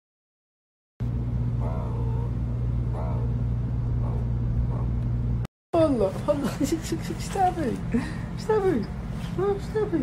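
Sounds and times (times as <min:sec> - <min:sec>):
low mechanical hum: 0:01.0 - 0:10.0.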